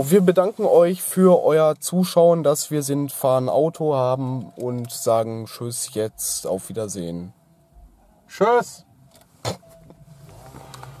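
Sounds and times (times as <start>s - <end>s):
car cabin hum: 3.3s - 11.0s.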